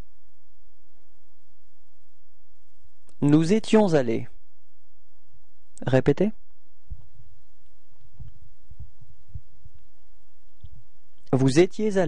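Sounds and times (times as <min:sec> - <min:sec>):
steady low hum: 0:00.0 - 0:12.0
irregular low pulses: 0:04.4 - 0:11.3.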